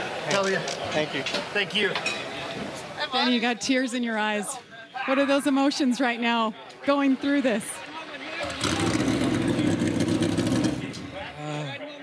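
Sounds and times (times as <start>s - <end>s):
race car engine running: 8.5s - 11.2s.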